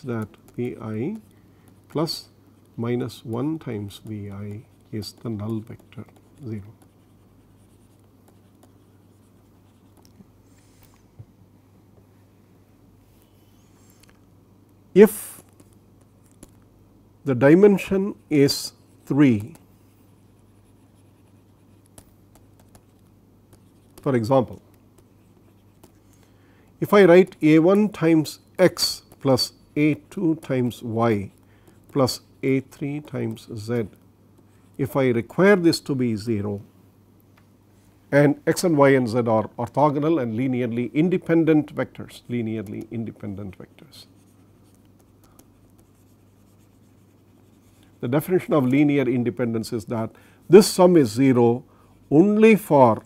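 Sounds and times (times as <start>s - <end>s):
stylus tapping and scratching: 0.0s - 10.3s, 14.0s - 16.7s, 17.8s - 26.2s, 28.7s - 35.1s, 38.6s - 48.9s
low electrical hum: 0.0s - 53.0s.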